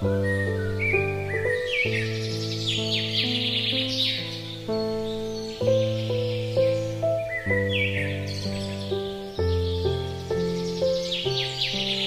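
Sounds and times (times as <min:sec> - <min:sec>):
birdsong chirps: 0:00.0 - 0:12.0
slow solo piano music: 0:00.0 - 0:12.0.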